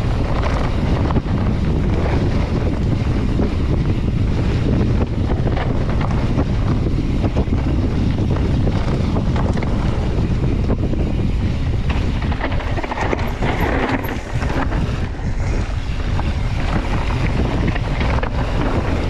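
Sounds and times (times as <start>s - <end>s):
bike clicks and rattles: 0.0s - 19.0s
bike tyres rolling on dirt: 0.0s - 19.0s
wind buffeting microphone: 0.0s - 19.0s.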